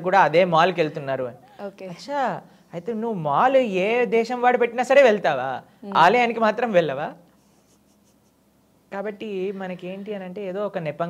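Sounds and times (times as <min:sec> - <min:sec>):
man speaking: 0:02.2 - 0:07.2.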